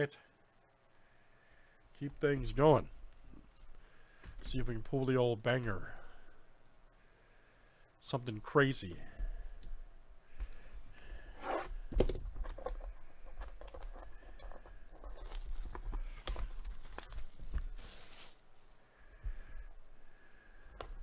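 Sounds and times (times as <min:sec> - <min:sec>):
plastic wrap tearing and crinkling: 0:15.1 - 0:18.6.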